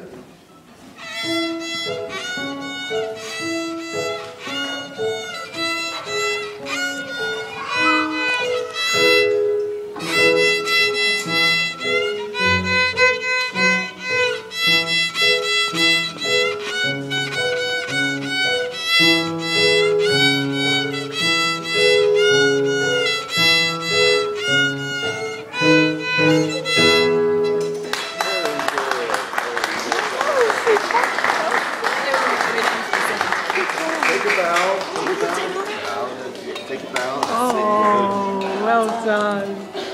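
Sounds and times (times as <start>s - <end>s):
violin bowed notes: 1.0s - 29.0s
lower accompaniment: 1.0s - 29.5s.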